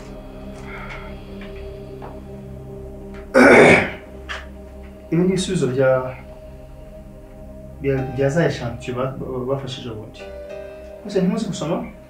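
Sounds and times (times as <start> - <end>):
soft background music: 0.0 - 12.0
man coughing: 3.4 - 4.0.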